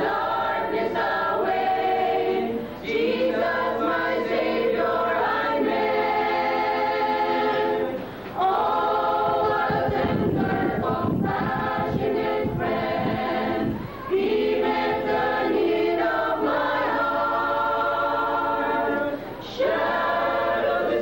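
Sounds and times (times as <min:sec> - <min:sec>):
choir singing long held notes: 0:00.0 - 0:21.0.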